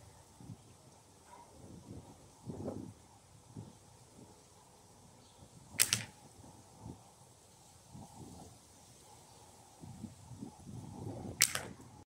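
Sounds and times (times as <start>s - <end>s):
slingshot bands snapping: 5.8s - 6.2s, 11.4s - 11.9s.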